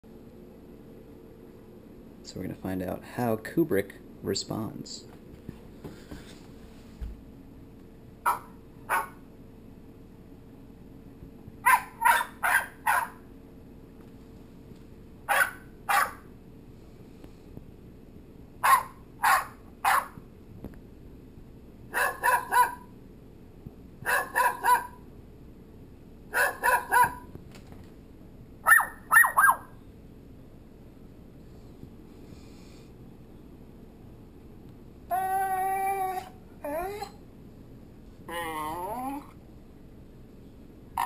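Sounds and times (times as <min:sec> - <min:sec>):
recorded dog barks from phone: 0:08.2 - 0:09.2, 0:11.6 - 0:13.2, 0:15.3 - 0:16.3, 0:18.6 - 0:20.2, 0:21.9 - 0:22.9, 0:24.0 - 0:25.0, 0:26.3 - 0:27.3, 0:28.6 - 0:29.7.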